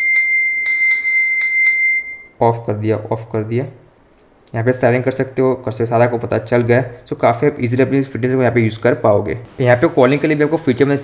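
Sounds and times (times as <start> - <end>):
phone alarm ringing: 0.0 - 2.4.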